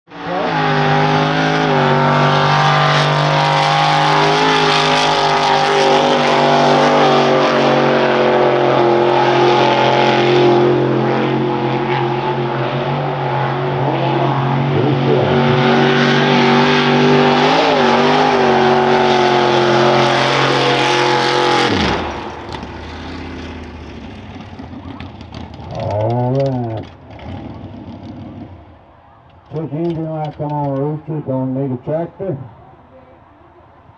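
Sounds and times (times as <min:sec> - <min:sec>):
truck engine revving: 0:00.1 - 0:32.4.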